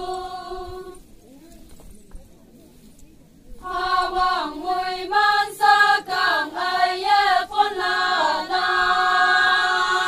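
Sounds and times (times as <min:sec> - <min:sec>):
faint background voices: 0:00.0 - 0:05.6.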